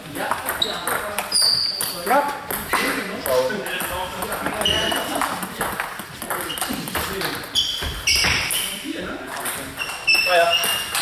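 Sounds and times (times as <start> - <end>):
voices echoing in hall: 0.0 - 11.0
table tennis balls clicking: 0.2 - 8.7, 9.3 - 11.0.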